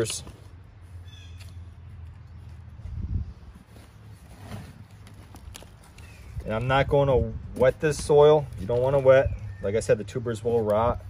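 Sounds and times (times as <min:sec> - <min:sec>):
soft rustles of potting soil: 0:00.0 - 0:11.0.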